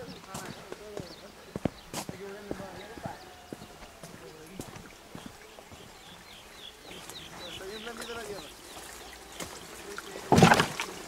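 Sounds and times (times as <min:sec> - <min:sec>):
footsteps on dirt trail: 0:00.0 - 0:09.9.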